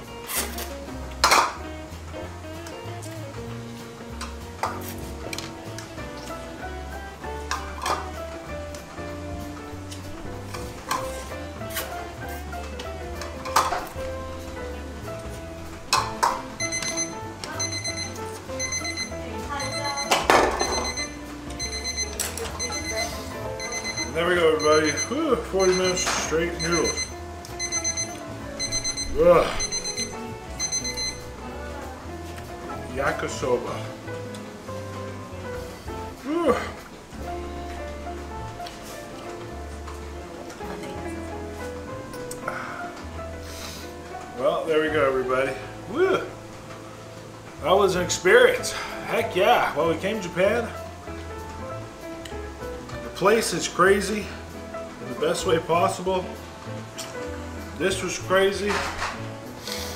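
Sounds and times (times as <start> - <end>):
background music: 0.0 - 59.9
timer alarm beeping: 16.6 - 31.4.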